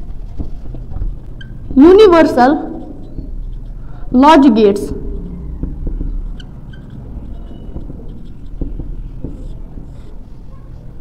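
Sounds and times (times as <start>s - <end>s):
marker scratching on whiteboard: 0.0s - 11.0s
steady low rumble: 4.9s - 6.4s.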